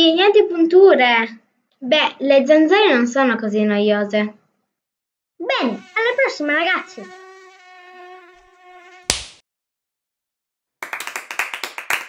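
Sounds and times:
mosquito whining buzz: 5.4s - 9.1s.

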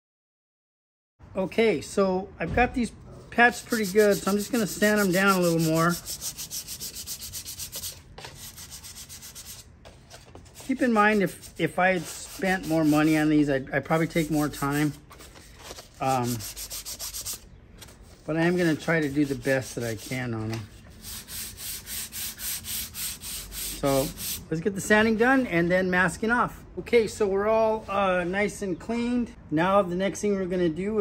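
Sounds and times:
sandpaper rubbing on wood: 3.4s - 9.7s, 10.5s - 15.0s, 15.9s - 17.4s, 18.2s - 24.4s.

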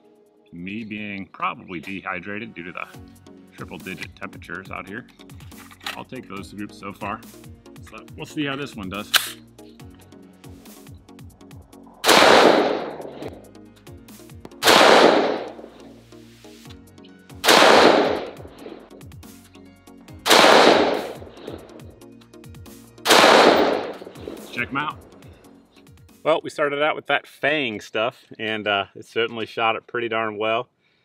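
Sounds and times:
pistol shots with echo: 12.0s - 13.4s, 14.6s - 15.7s, 17.4s - 18.8s, 20.3s - 21.8s, 23.1s - 24.6s.

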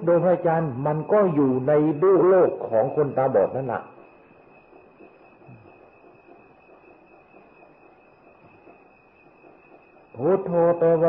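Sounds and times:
high-pitched whine: 0.0s - 11.0s
recording hiss: 0.0s - 11.0s.

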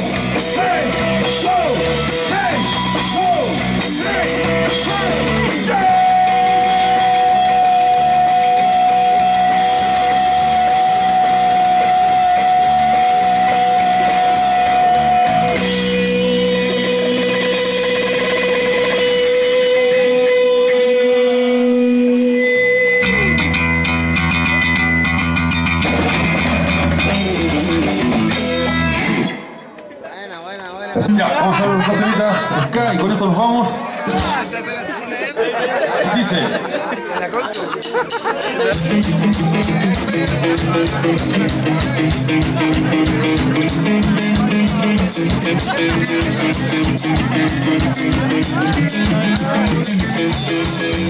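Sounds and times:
punk rock band playing: 0.0s - 29.8s, 31.0s - 34.7s, 35.4s - 51.0s.

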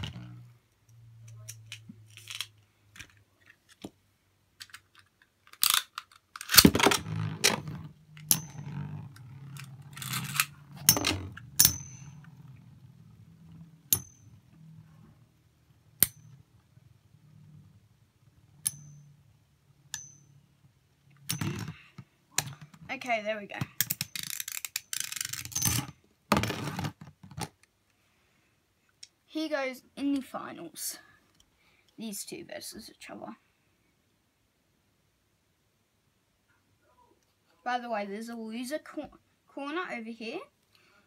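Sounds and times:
spinning tops clattering: 5.6s - 12.4s
metallic pings of tops clashing: 8.2s - 8.8s, 10.0s - 12.2s, 13.9s - 14.5s, 18.6s - 19.2s, 19.9s - 20.4s.

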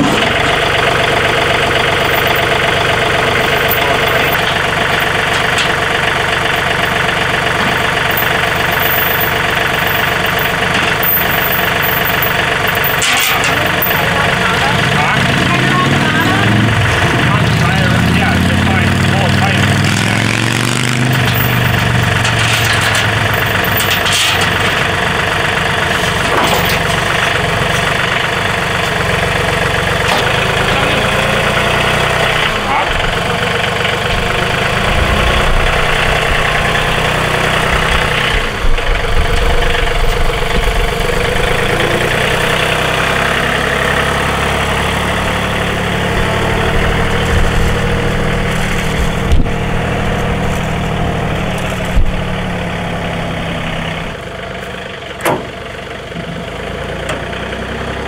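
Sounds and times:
tractor diesel engine running: 0.0s - 58.0s.

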